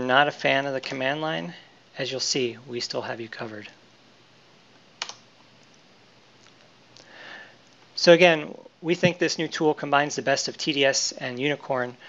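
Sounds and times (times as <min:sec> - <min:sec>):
soft breathy hiss: 0:00.0 - 0:12.0.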